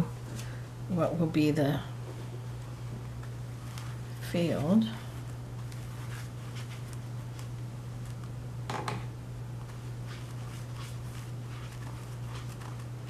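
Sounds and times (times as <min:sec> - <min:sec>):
steady low hum: 0:00.0 - 0:13.0
brush strokes on wet paper: 0:09.6 - 0:12.9.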